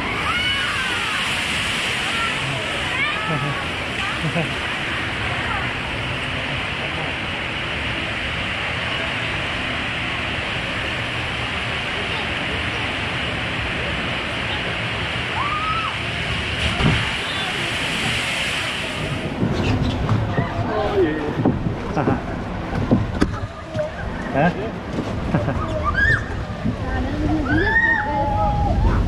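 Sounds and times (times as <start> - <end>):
churning water rushing: 0.0 - 29.0
splash or bump: 16.3 - 20.3.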